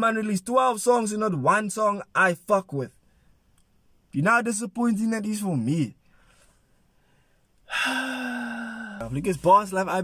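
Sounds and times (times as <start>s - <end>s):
man sighing: 7.6s - 9.1s.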